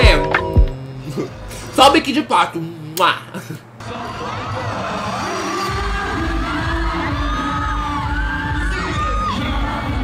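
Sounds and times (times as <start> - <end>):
crowd cheering and screaming: 3.9 - 10.0.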